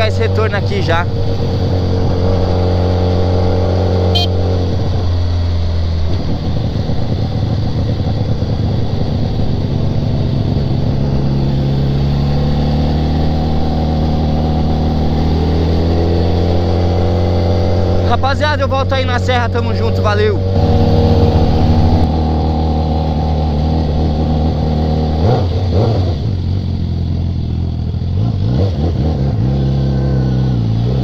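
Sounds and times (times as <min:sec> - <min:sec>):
motorcycle engine running: 0:00.0 - 0:31.0
wind noise: 0:00.9 - 0:18.0, 0:20.4 - 0:22.7.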